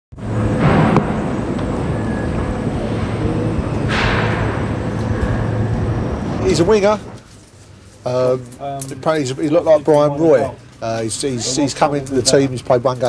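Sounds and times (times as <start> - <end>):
mechanical rumble with low hum: 0.2 - 13.0.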